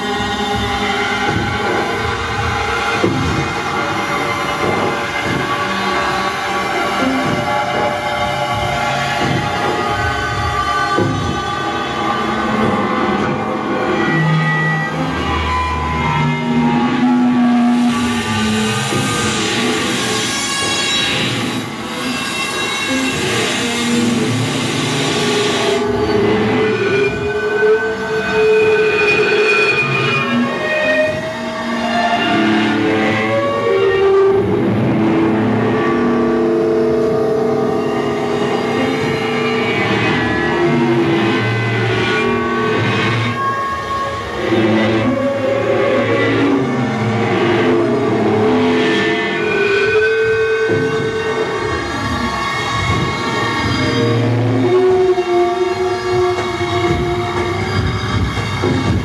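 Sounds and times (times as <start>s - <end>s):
drone music with electric guitar: 0.0s - 59.0s.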